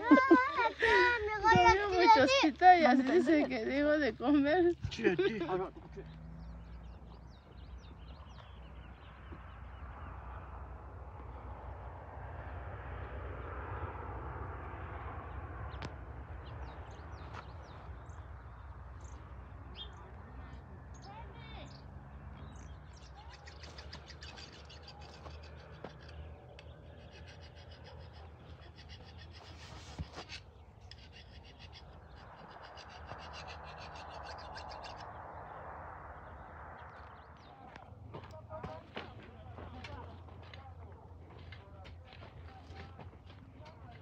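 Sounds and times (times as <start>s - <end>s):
low outdoor rumble: 0.0s - 44.0s.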